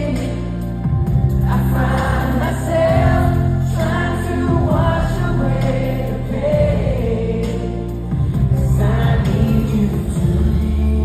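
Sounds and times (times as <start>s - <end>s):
band backing: 0.0s - 11.0s
keyboard chords: 0.0s - 11.0s
man singing: 1.5s - 11.0s.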